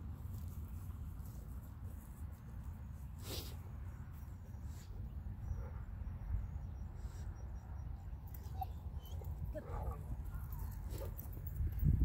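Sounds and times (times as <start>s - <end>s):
wind rumble on microphone: 10.0s - 12.0s.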